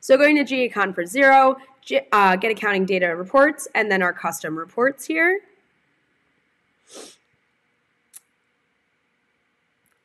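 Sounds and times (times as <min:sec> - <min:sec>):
person breathing: 0:06.9 - 0:07.2.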